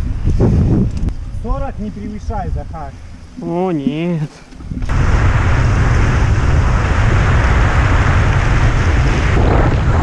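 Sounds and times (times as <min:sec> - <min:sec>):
tyres humming on asphalt: 0:00.0 - 0:10.0
wind buffeting microphone: 0:00.0 - 0:10.0.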